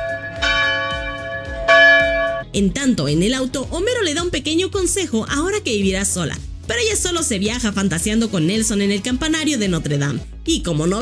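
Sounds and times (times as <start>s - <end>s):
large church bell tolling: 0.0s - 2.4s.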